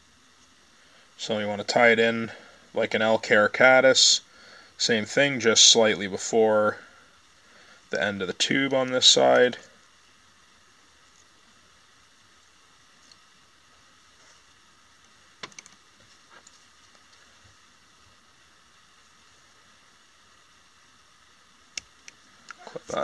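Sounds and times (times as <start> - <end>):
faint room hiss: 0.0 - 23.0
soft clicks and rustles: 12.4 - 18.2.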